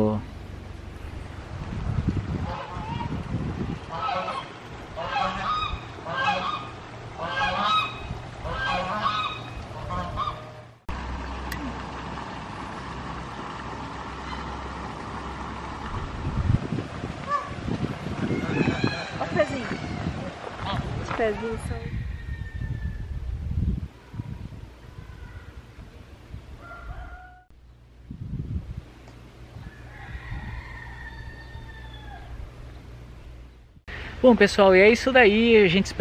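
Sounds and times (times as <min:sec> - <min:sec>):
geese honking: 0:02.4 - 0:03.2, 0:03.8 - 0:10.8, 0:14.2 - 0:14.8, 0:17.2 - 0:17.6, 0:18.2 - 0:21.6
steady low background noise: 0:03.7 - 0:16.3.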